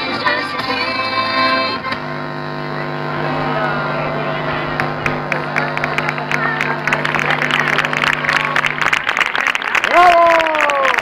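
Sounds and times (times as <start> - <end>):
low electrical hum: 0.8 - 11.0.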